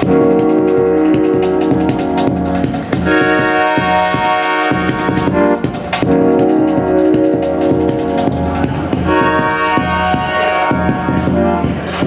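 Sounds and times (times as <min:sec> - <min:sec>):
drum and cymbal hits: 0:00.0 - 0:12.0
live band playing chords: 0:00.0 - 0:12.0.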